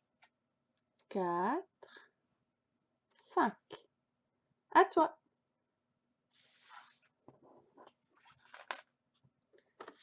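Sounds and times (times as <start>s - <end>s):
tokens clicking on wooden table: 8.4s - 8.9s.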